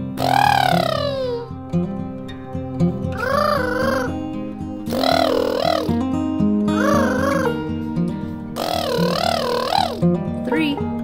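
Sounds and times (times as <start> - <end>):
parrot call: 0.0 - 1.6, 3.2 - 6.1, 6.7 - 7.8, 8.6 - 10.0
guitar music: 0.0 - 11.0.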